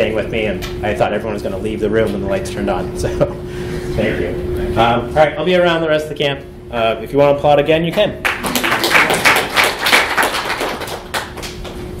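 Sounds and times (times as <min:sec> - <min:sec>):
audience applauding: 0:08.2 - 0:11.8.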